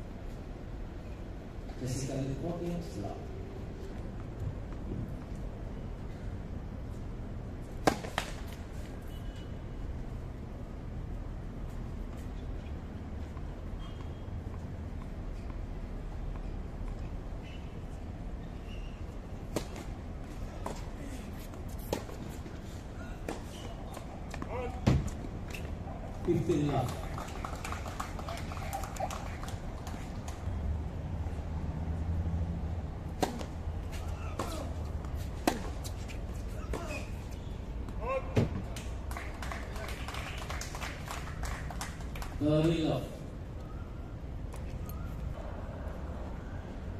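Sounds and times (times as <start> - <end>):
tennis ball struck by racket: 7.8 - 8.5, 19.5 - 19.9, 33.1 - 37.0.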